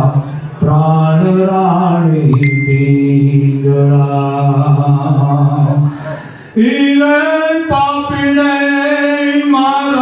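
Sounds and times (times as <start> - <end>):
man chanting into a microphone: 0.0 - 2.4, 3.0 - 10.0
breath: 0.2 - 0.6, 5.8 - 6.6.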